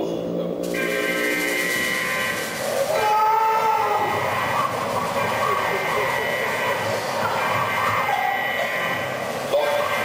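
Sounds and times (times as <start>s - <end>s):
rushing stage smoke: 0.6s - 8.1s.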